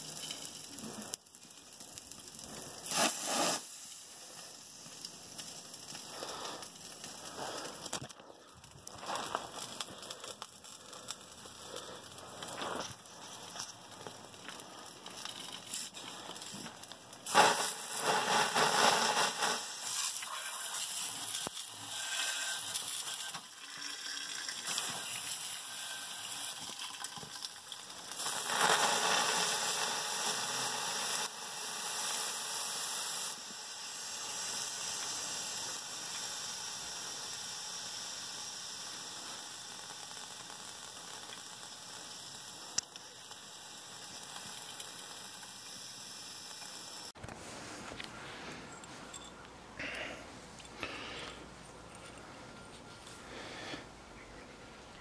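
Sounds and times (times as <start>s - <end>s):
steady hissing spray: 0.0s - 47.2s.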